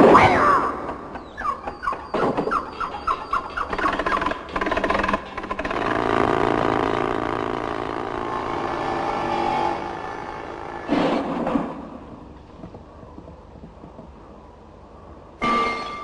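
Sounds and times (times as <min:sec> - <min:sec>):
wooden wheels squeaking: 0:01.1 - 0:14.7
cart rattle: 0:02.2 - 0:14.5
cart rolling rumble: 0:02.9 - 0:14.8.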